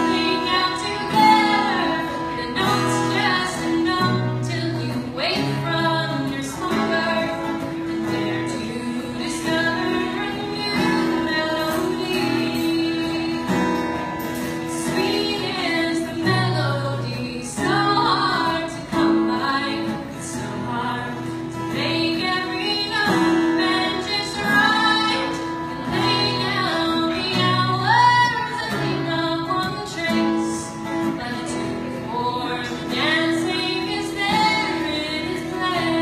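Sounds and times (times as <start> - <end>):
acoustic guitars: 0.0 - 36.0
woman singing: 0.0 - 36.0.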